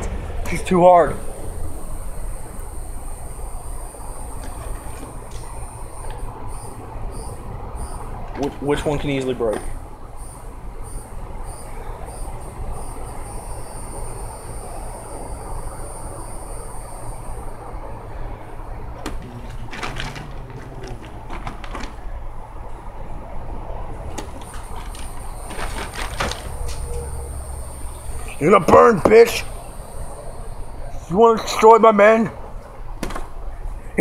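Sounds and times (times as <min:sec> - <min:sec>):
high insect drone: 0:00.2 - 0:32.5.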